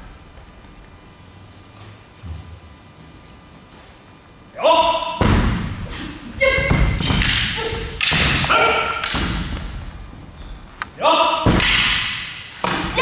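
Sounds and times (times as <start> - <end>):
shouted kiai yells: 4.6 - 5.2, 8.4 - 9.0, 11.0 - 11.5.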